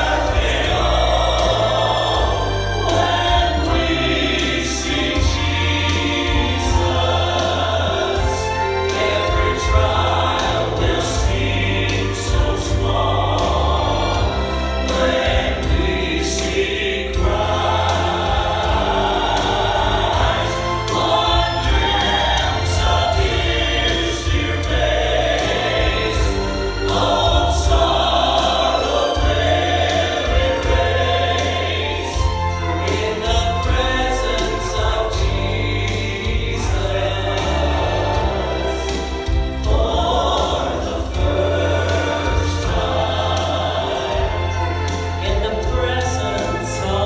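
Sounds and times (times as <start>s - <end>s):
gospel music with steady bass: 0.0s - 47.0s
women and man singing together: 0.0s - 47.0s.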